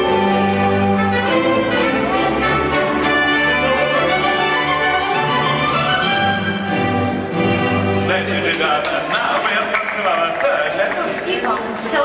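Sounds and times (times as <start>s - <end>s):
orchestral string music: 0.0s - 10.3s.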